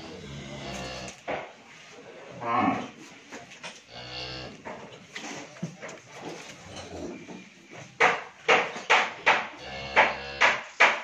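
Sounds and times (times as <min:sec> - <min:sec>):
cattle mooing: 0:00.0 - 0:01.2, 0:09.6 - 0:10.5.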